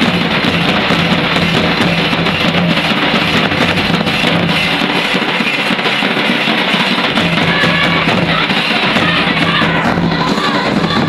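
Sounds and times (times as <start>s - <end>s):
kettle drums and barrel drum: 0.0s - 11.0s.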